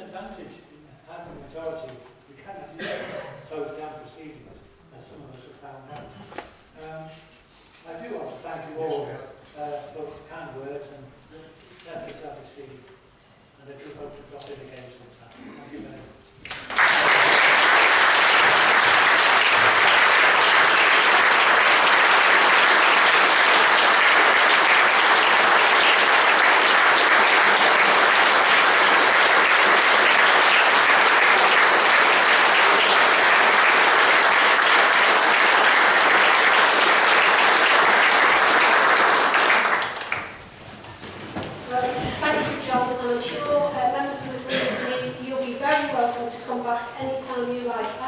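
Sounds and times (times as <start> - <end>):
crowd applauding: 16.4 - 40.4.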